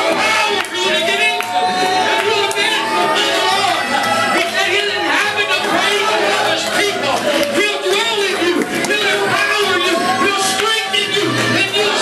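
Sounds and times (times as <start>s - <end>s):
congregation voices: 0.0s - 12.0s
music: 0.0s - 12.0s
preacher speaking through microphone: 0.0s - 12.0s.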